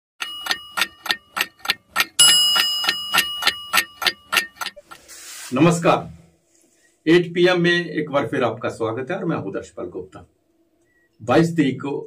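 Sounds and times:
alarm bell ringing: 0.2s - 1.4s, 2.2s - 4.8s
clock ticking: 0.2s - 5.0s.

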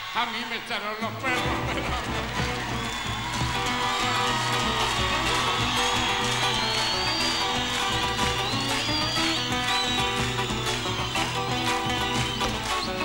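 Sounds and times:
acoustic guitars playing: 1.0s - 13.0s.

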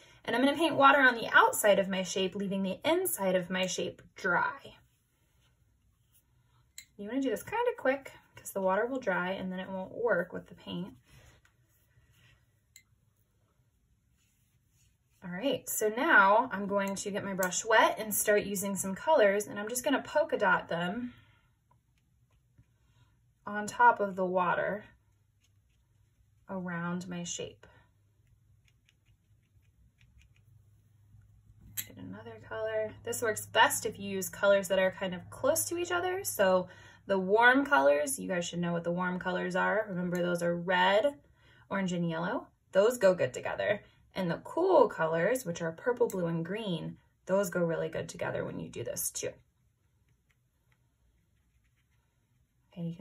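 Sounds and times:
paintbrush dabbing paper: 4.7s - 6.6s, 10.6s - 15.6s, 21.8s - 31.4s, 49.5s - 52.8s.

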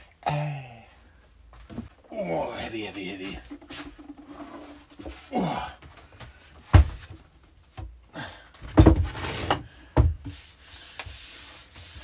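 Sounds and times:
wooden rack scraping: 3.2s - 5.3s, 8.7s - 10.4s
soft rubbing: 10.3s - 12.0s.

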